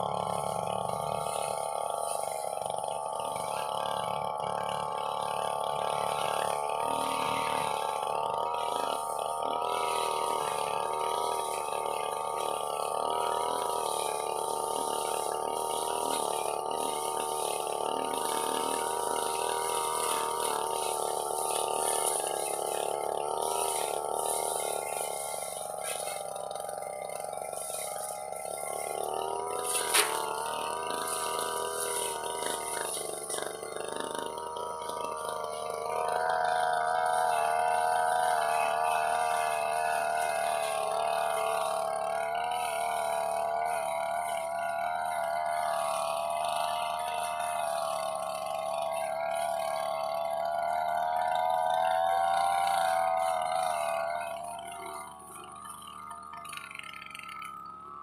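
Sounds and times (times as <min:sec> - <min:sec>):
brush cutter engine running: 0:00.0 - 0:58.0.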